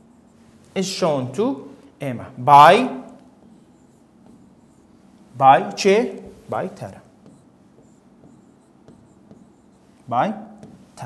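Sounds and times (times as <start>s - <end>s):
stylus tapping and scratching: 3.0s - 11.0s.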